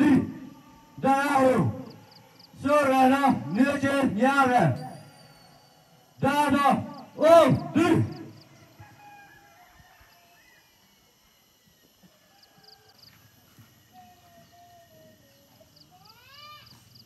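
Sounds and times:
distant animal chirps: 0:04.6 - 0:08.9.

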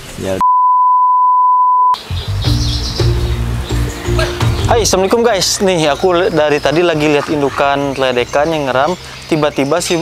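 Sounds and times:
steady test-tone beep: 0:00.4 - 0:02.0
background music with a beat: 0:02.2 - 0:04.8.

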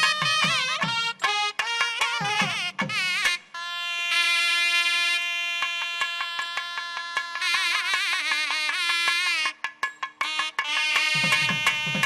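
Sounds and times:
sharp drum strokes: 0:00.0 - 0:03.4, 0:05.6 - 0:12.0.

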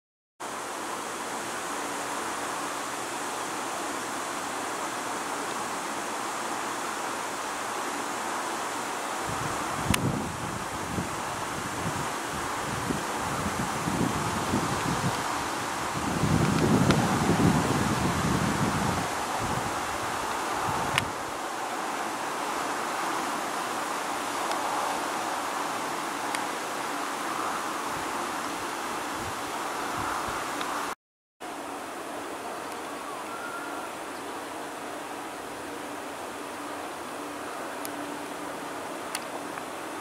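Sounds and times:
outdoor hiss: 0:00.4 - 0:40.0
wind buffeting microphone: 0:09.2 - 0:31.0.

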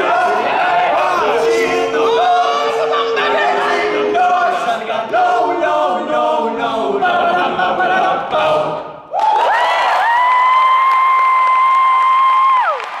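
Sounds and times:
male group singing harmony: 0:00.0 - 0:09.1
high voice holding a note: 0:01.4 - 0:04.1
applause: 0:09.2 - 0:13.0.

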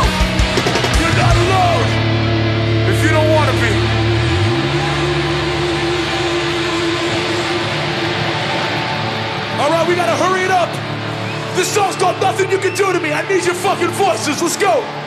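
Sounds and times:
crowd shouting: 0:00.0 - 0:02.2, 0:03.0 - 0:15.0
amplified guitars ringing chord: 0:00.0 - 0:15.0.

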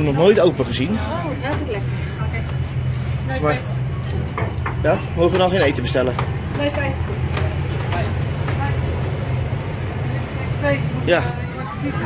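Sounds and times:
background chatter: 0:00.0 - 0:12.0
steady low hum: 0:00.0 - 0:12.0.

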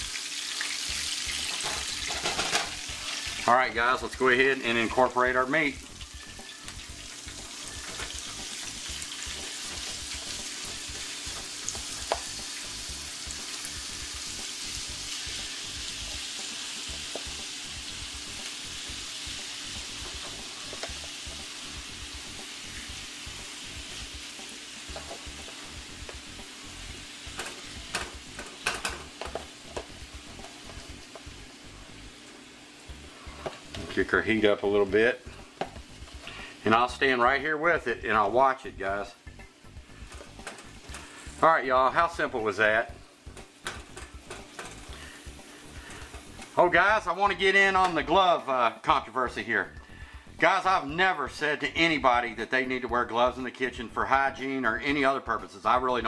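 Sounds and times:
meat sizzling in oil: 0:00.0 - 0:50.9.

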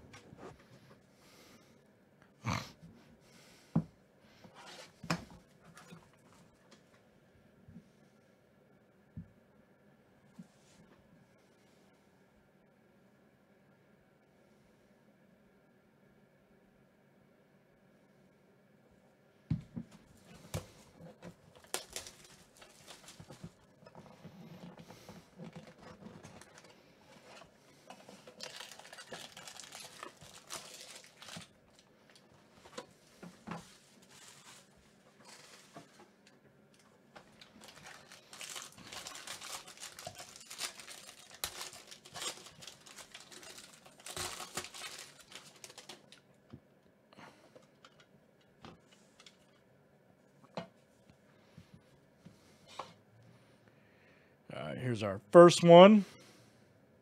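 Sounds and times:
foil pack tearing and crinkling: 0:20.5 - 0:23.8, 0:25.3 - 0:32.2, 0:34.0 - 0:35.8, 0:37.2 - 0:46.2
plastic wrap tearing: 0:20.5 - 0:23.8, 0:28.1 - 0:32.2, 0:37.2 - 0:46.2.

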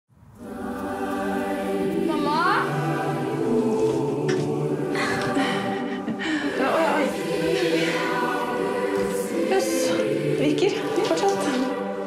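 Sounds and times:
choir holding long chords: 0:00.2 - 0:12.0
upward-gliding voice: 0:02.0 - 0:02.8.

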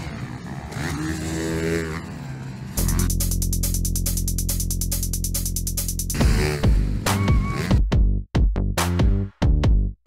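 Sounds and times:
dirt bike engine running: 0:00.0 - 0:07.8
electronic music with steady beat: 0:02.8 - 0:08.2.

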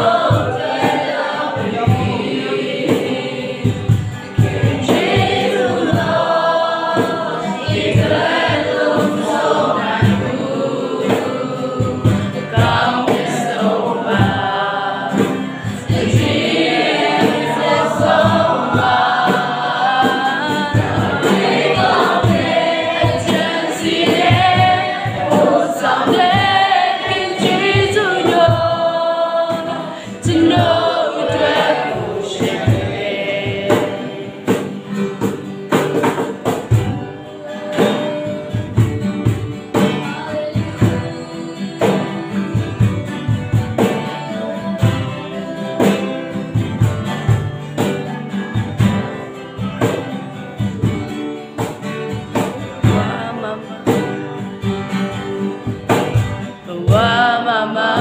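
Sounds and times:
woman and man singing: 0:00.0 - 0:35.3, 0:36.3 - 0:49.0, 0:51.6 - 0:55.0, 0:55.7 - 0:58.0
strummed acoustic guitars: 0:00.0 - 0:58.0.

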